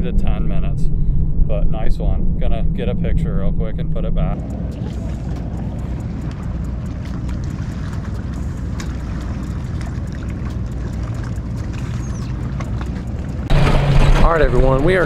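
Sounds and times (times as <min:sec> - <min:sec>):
outboard motor running: 0:04.4 - 0:15.0.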